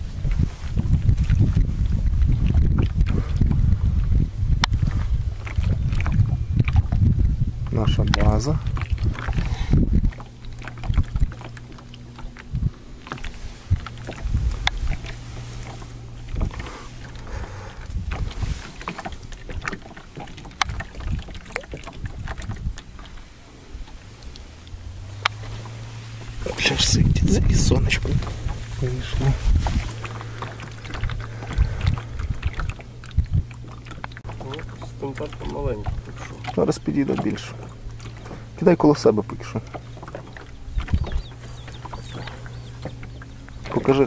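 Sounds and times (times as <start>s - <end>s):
low boat hum: 0.0s - 44.0s
water splashing against hull: 0.0s - 44.0s.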